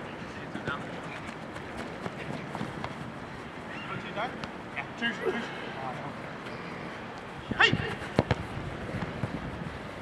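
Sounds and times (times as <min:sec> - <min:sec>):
football kicked thuds: 0:08.1 - 0:09.3.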